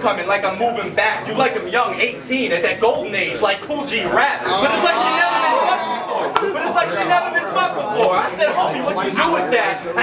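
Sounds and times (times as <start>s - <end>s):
crowd chatter: 0.0s - 10.0s
men speaking: 0.0s - 10.0s.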